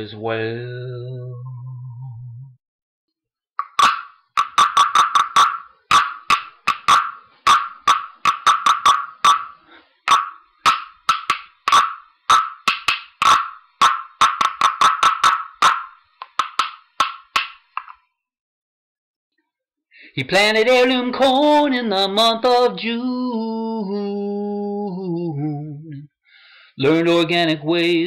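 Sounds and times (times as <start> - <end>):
frog tapper taps: 3.6 - 18.0.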